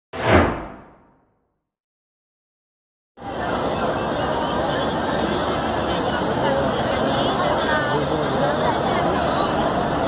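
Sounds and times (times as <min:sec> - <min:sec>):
deep swoosh: 0:00.1 - 0:01.3.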